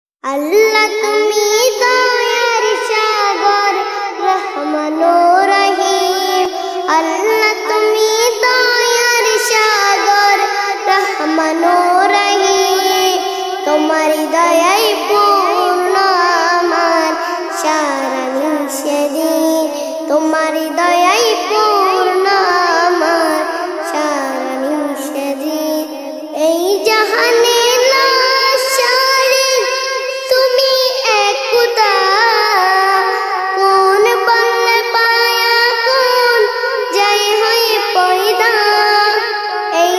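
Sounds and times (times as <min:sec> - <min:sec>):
child singing: 0:00.2 - 0:39.9.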